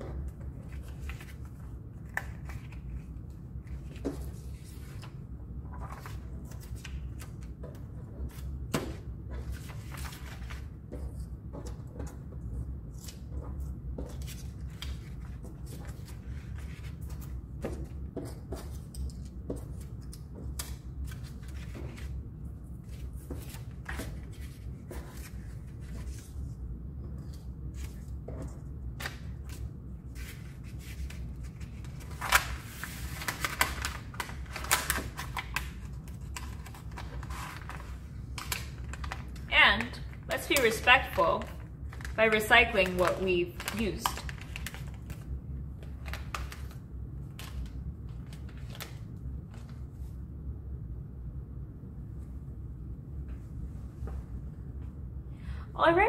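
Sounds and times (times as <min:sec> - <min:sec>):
paper rustles and clicks: 0:00.2 - 0:12.4, 0:27.1 - 0:49.8
paper crinkling: 0:29.0 - 0:49.8.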